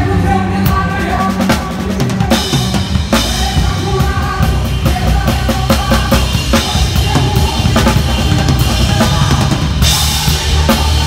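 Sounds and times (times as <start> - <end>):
bass guitar: 0.0 - 11.0.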